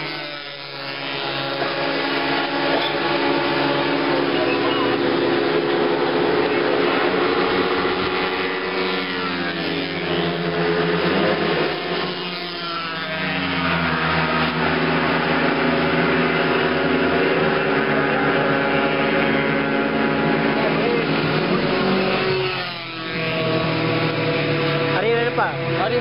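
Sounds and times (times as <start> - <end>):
motorcycle engine drone: 0.0 - 26.0
motorcycles passing by: 0.0 - 26.0.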